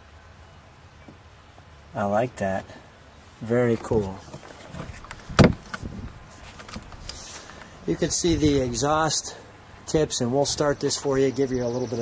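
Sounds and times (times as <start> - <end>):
hard thump on car trim: 4.7 - 5.9
light knocks on plastic panel: 5.4 - 5.7.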